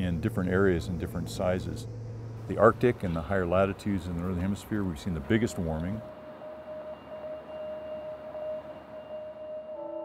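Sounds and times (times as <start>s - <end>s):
ambient music held note: 0.0s - 10.0s.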